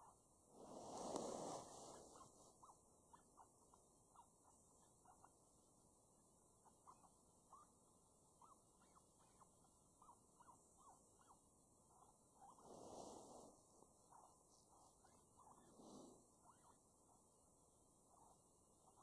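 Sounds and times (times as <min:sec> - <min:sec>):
faint electronic rodent squeaks: 0:00.0 - 0:00.2, 0:01.6 - 0:05.6, 0:06.6 - 0:12.8, 0:14.0 - 0:17.4, 0:18.0 - 0:19.0.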